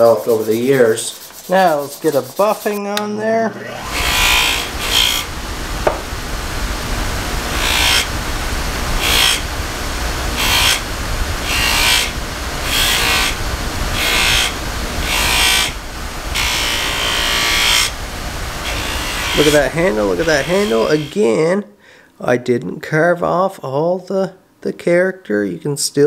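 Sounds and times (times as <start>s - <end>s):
wood buffing hiss: 0.0s - 2.8s, 3.7s - 21.2s
bench grinder motor hum: 3.6s - 21.1s.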